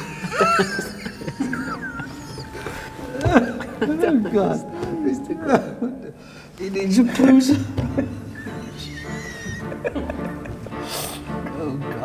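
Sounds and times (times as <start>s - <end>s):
muffled laughter: 0.0s - 4.3s, 8.0s - 10.9s
background music: 0.0s - 12.0s.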